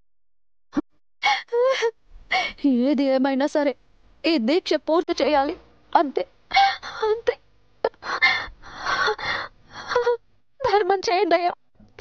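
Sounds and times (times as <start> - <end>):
woman gasping: 1.2 - 2.6, 7.9 - 10.2.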